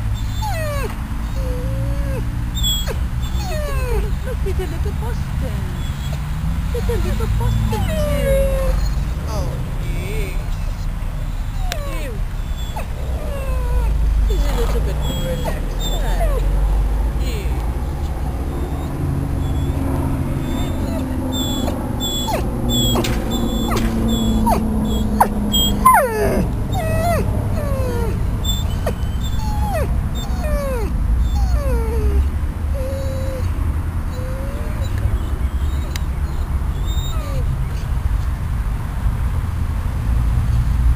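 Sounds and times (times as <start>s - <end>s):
steady low rumble: 0.0s - 32.9s
dog whimpering: 0.2s - 16.6s, 18.5s - 37.9s
person speaking: 9.2s - 10.7s, 14.3s - 16.5s, 17.2s - 17.8s.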